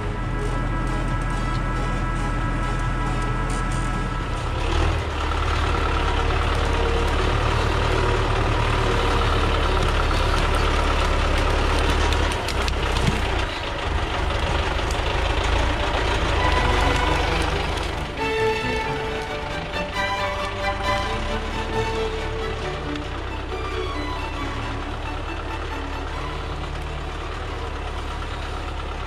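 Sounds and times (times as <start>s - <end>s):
tractor diesel engine running: 0.0s - 29.0s.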